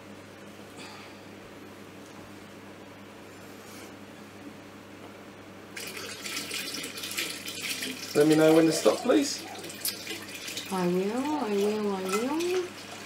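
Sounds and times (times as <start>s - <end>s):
water pouring into plastic bucket: 5.8s - 13.0s.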